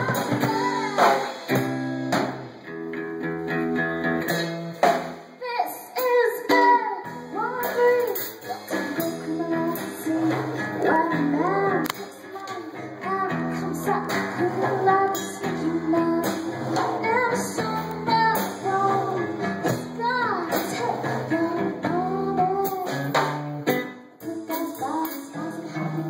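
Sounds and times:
woman singing: 0.0 - 1.7, 5.4 - 26.0
drum and cymbal hits: 0.0 - 2.6
strummed acoustic guitar: 0.0 - 5.3, 6.0 - 26.0.

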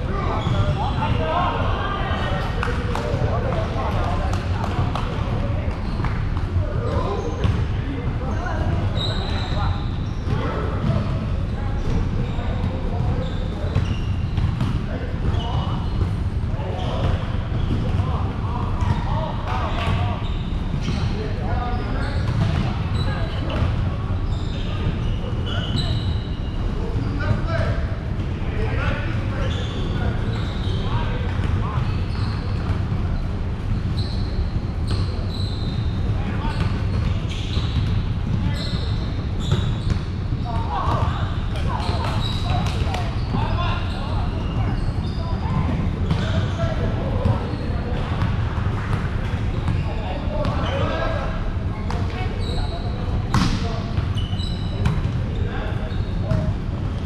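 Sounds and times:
shoe squeaks: 0.1 - 2.3, 8.3 - 27.8, 28.7 - 57.0.

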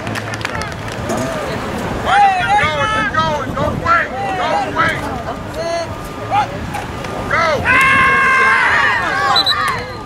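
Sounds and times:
people calling and chattering: 0.0 - 10.0.

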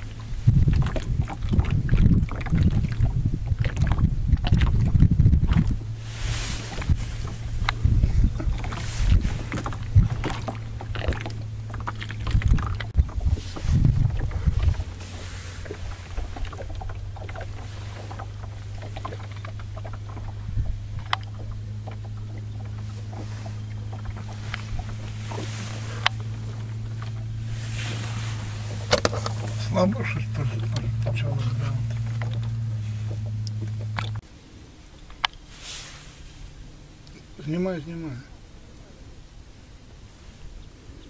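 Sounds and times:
motorboat engine humming: 0.0 - 41.0.

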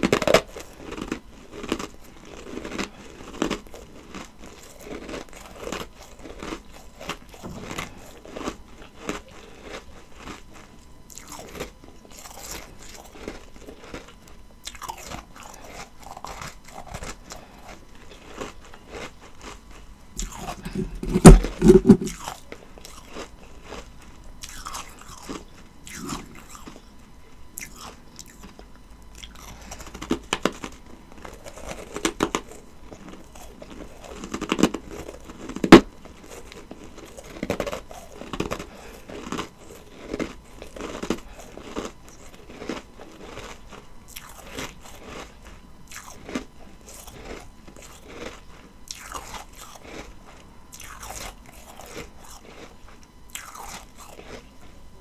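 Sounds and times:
ice crunching while chewing: 0.0 - 26.9, 27.6 - 54.8.

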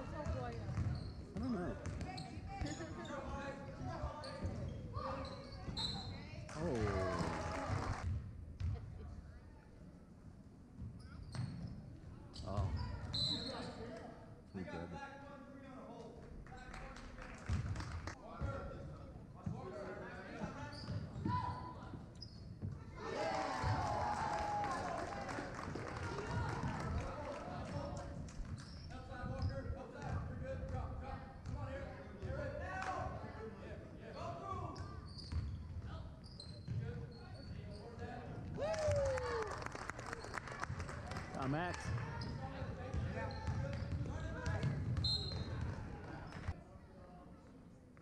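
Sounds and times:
sneakers squeaking: 0.0 - 6.4, 10.8 - 14.0, 20.3 - 23.0, 34.2 - 38.5, 42.0 - 46.6
voices echoing in a hall: 12.0 - 47.9.

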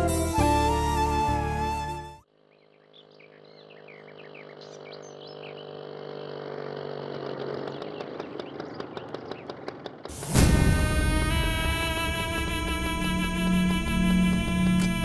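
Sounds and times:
small birds chirping: 2.4 - 10.1.

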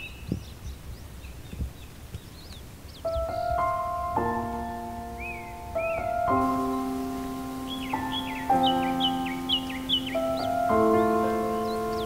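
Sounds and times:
forest bird song: 0.0 - 12.0
soft piano chords: 2.9 - 12.0.

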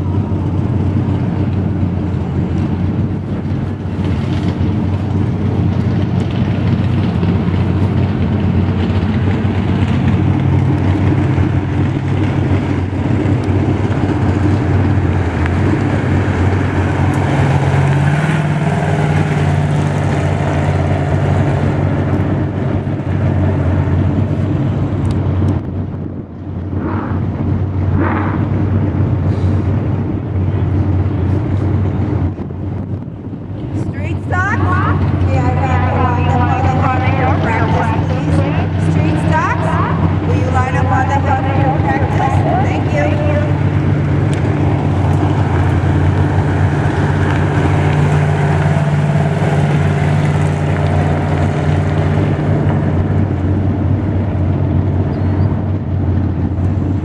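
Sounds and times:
race car engine passing: 6.4 - 24.1, 34.0 - 55.1.

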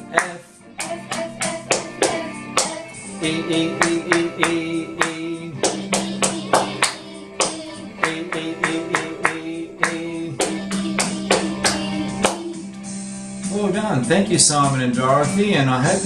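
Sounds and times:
hands clapping a steady rhythm: 0.0 - 13.6
music backing track: 0.0 - 16.0
voices singing along: 0.0 - 16.0.

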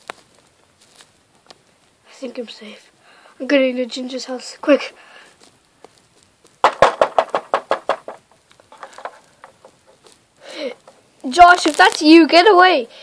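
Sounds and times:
rapid knocking on door: 6.6 - 8.3.

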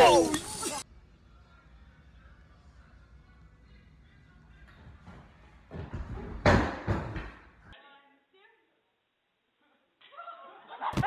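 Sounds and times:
dance pole crashing to floor: 6.4 - 7.5.

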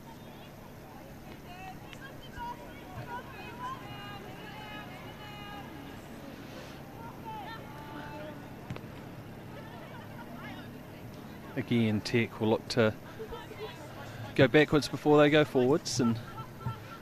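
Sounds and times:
low background hum: 0.0 - 17.0
players shouting: 0.0 - 17.0.

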